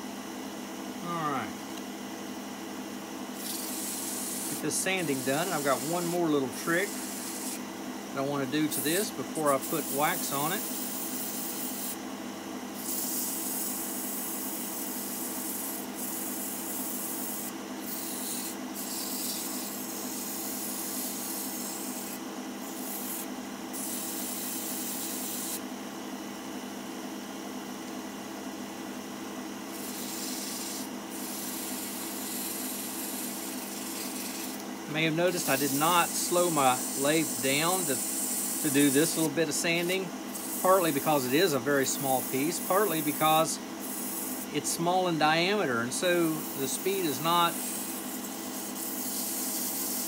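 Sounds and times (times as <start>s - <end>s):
lathe motor hum: 3.3s - 12.0s, 12.7s - 25.7s, 29.6s - 50.0s
sandpaper hissing on spinning wood: 3.4s - 7.6s, 8.3s - 12.0s, 12.7s - 25.6s, 29.7s - 50.0s.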